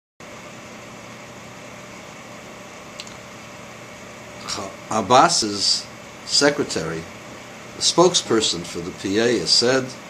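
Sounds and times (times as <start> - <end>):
room noise hiss: 0.2 - 10.0
short click: 3.0 - 3.2.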